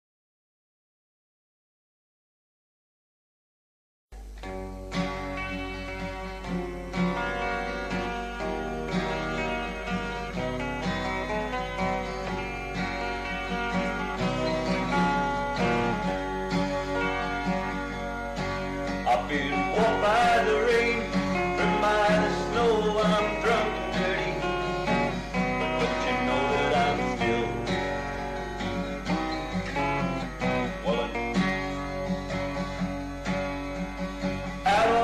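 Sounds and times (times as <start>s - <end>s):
electric guitar picking: 4.2s - 35.0s
person singing: 19.1s - 25.0s, 25.8s - 28.1s, 30.6s - 31.6s, 34.6s - 35.0s.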